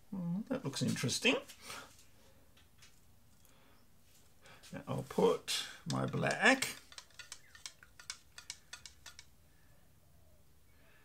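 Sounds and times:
stir stick clicking in cup: 0:05.8 - 0:09.4.

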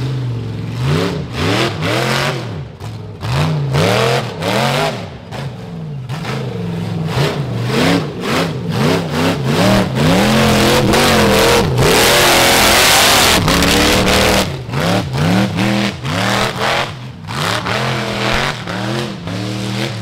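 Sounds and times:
engine revving hard: 0:00.7 - 0:05.5, 0:06.1 - 0:20.0
spinning tyres throwing dirt: 0:09.5 - 0:20.0.

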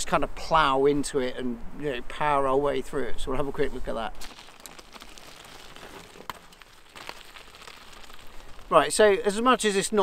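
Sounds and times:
bike tyres crunching on gravel: 0:04.2 - 0:10.0.

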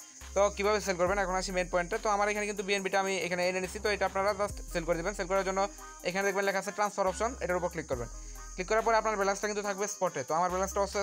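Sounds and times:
background music: 0:00.0 - 0:11.0
person speaking: 0:00.4 - 0:11.0.

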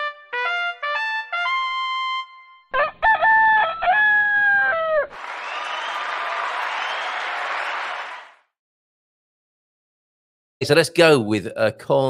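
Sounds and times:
rooster crowing: 0:02.7 - 0:08.1
applause: 0:05.1 - 0:08.5.

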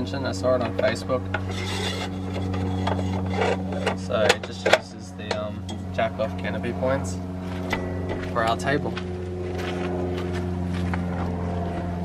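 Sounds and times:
metal scraping on metal: 0:00.7 - 0:06.0.

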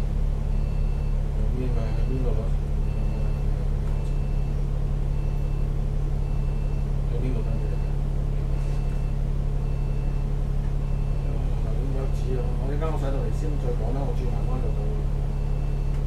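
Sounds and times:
bus diesel engine idling: 0:00.0 - 0:16.0.

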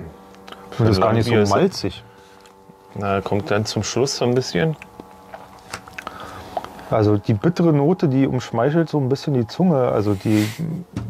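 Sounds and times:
mouth clicks and lip smacks: 0:04.8 - 0:06.8.

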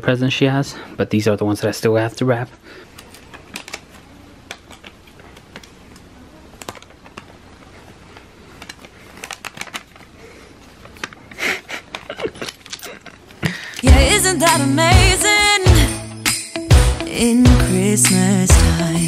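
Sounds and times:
wrapping paper crinkling: 0:02.9 - 0:13.8.

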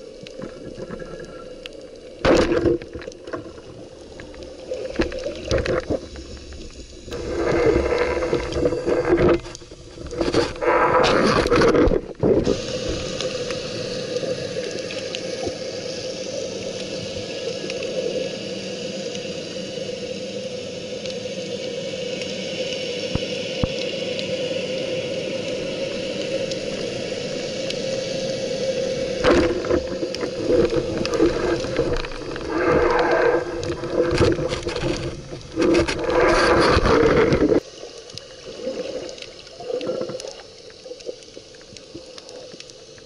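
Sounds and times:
water rushing and scraping: 0:00.0 - 0:15.7, 0:28.9 - 0:42.6
underwater hiss and hum: 0:00.0 - 0:43.0.

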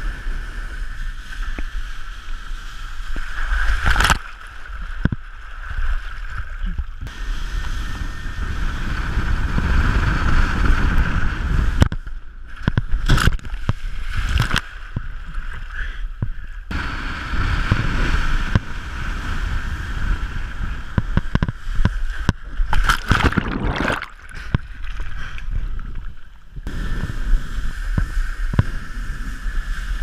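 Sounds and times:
camera plunging into water: 0:03.6 - 0:05.2, 0:12.6 - 0:15.2, 0:21.2 - 0:26.2
wind buffeting microphone: 0:06.7 - 0:15.5, 0:16.2 - 0:30.0
rushing water and spray: 0:16.7 - 0:30.0
sharp splashes: 0:22.6 - 0:25.4.

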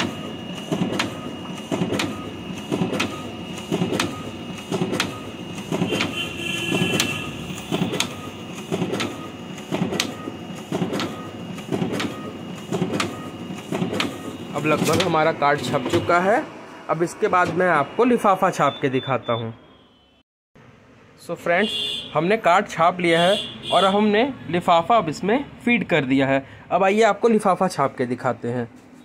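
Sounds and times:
printing machine running: 0:00.0 - 0:18.7.

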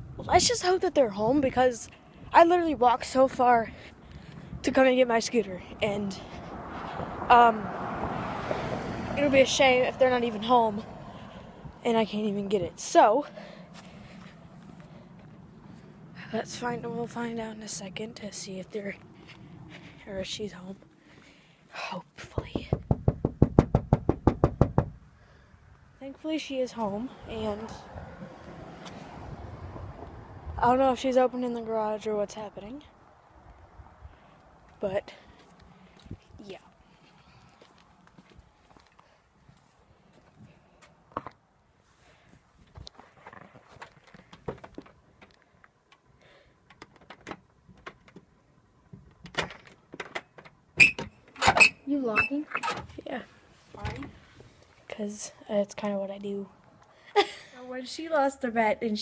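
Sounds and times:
knuckles knocking on door: 0:22.4 - 0:25.0.

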